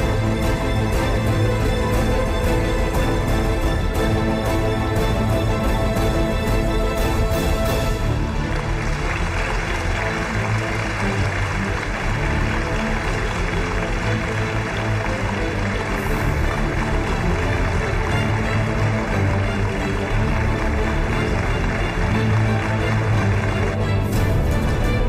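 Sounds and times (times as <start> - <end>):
loud music with low pulse: 0.0 - 25.0.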